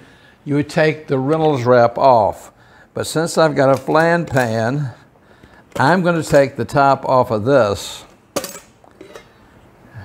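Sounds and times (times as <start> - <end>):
metal lid clinking: 8.4 - 9.3.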